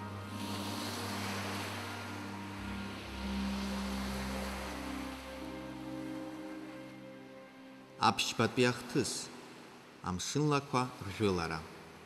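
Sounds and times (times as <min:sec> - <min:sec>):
sea waves washing: 0:00.0 - 0:12.0
soft music with held notes: 0:00.0 - 0:12.0.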